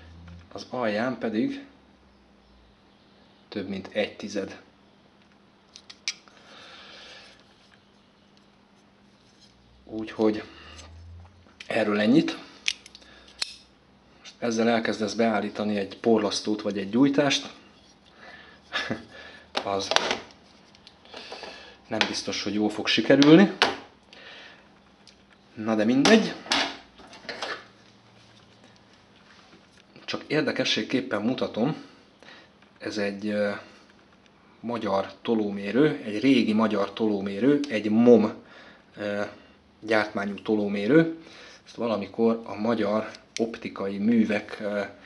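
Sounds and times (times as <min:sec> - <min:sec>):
metal calipers clicking: 0:12.6 - 0:13.7.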